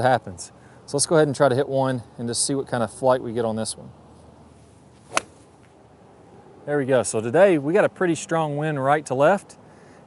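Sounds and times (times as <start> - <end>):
golf club striking ball: 5.1 - 5.8.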